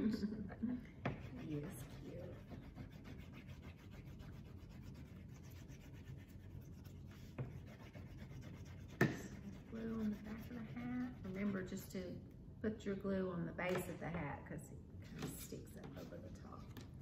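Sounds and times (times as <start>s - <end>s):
paper rubbing on tabletop: 1.1s - 11.8s.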